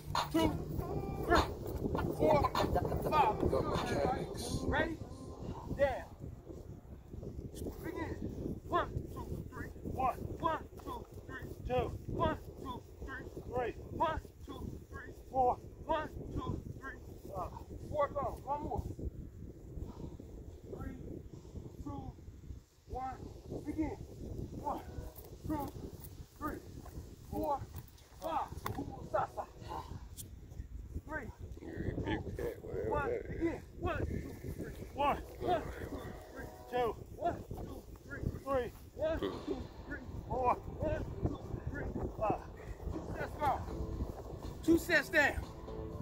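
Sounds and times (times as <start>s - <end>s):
indistinct voices talking: 0.0s - 18.7s, 23.0s - 30.2s, 31.0s - 46.0s
wind rumble on microphone: 0.0s - 46.0s.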